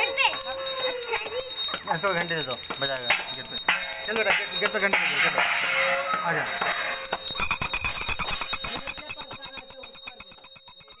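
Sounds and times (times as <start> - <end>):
metal struck rapidly and ringing: 0.0 - 11.0.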